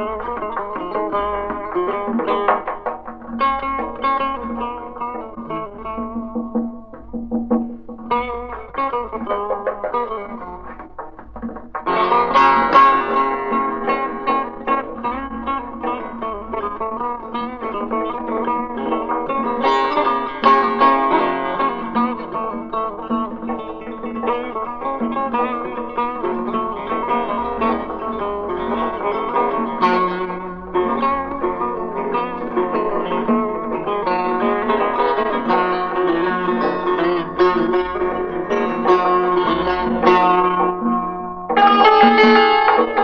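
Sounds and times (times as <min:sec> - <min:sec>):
plucked string instrument music: 0:00.0 - 0:43.0.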